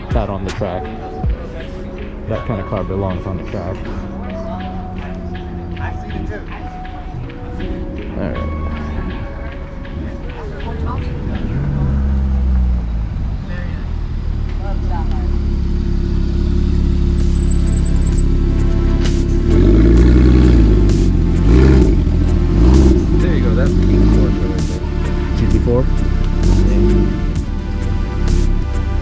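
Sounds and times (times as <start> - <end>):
car engine revving: 0.0 - 29.0.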